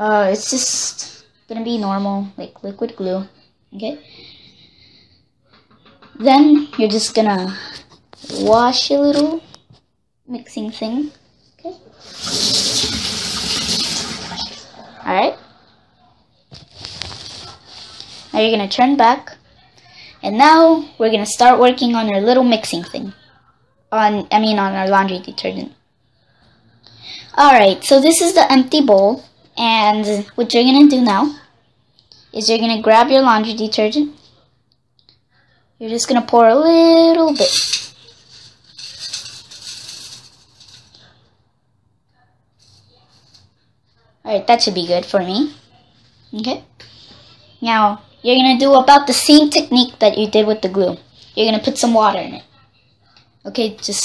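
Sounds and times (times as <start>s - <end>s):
detergent granules pouring: 12.0s - 14.6s
tap water running into sink: 12.1s - 14.6s.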